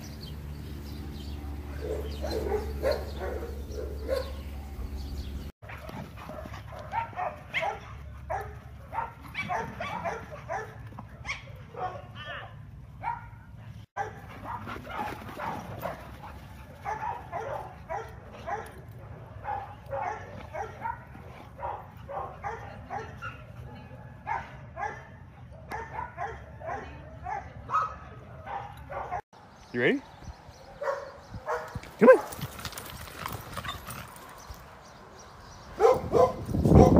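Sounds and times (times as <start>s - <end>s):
dogs barking and yipping: 0.0s - 29.3s, 30.5s - 36.9s.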